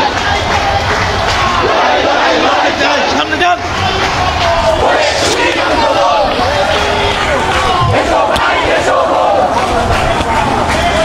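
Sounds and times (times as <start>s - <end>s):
crowd shouting slogans: 0.0s - 11.0s.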